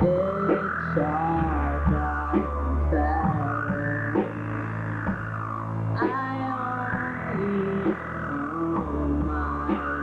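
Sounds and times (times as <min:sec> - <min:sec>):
drums: 0:00.0 - 0:10.0
electric guitar: 0:00.0 - 0:10.0
steady bass: 0:00.0 - 0:10.0.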